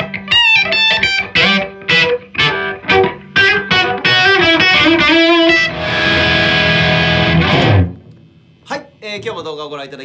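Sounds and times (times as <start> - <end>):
electric guitar picked phrases: 0.0 - 8.1.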